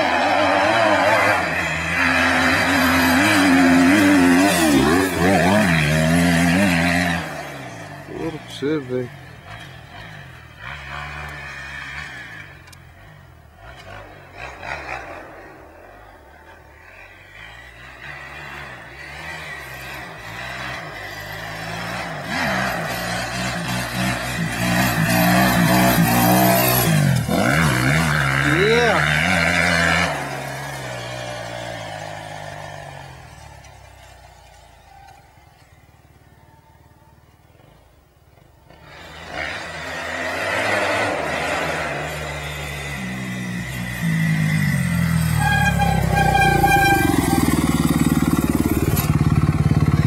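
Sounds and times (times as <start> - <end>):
motocross bike engine revving: 0.0 - 34.7, 38.6 - 50.0.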